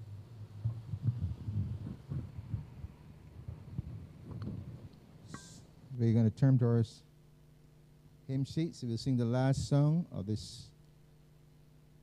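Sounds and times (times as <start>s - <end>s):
low hum from loudspeakers: 0.0s - 12.0s
microphone handling knocks and rubbing: 0.6s - 4.8s.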